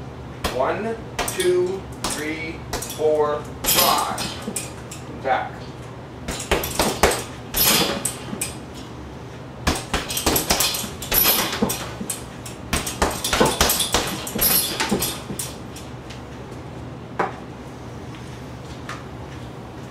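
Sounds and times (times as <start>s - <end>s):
fists thudding on heavy bag: 6.2s - 8.5s, 9.6s - 15.5s.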